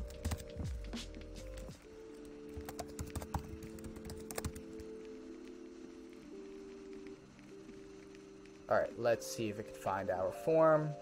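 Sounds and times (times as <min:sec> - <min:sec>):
computer keyboard typing: 0:00.0 - 0:00.7, 0:01.8 - 0:05.1
background music of held chords: 0:00.0 - 0:11.0.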